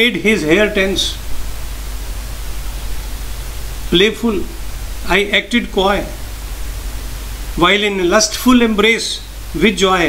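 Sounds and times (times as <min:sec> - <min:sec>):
narrator speaking: 0:00.0 - 0:01.2, 0:03.9 - 0:06.2, 0:07.6 - 0:10.0
steady hiss: 0:00.0 - 0:10.0.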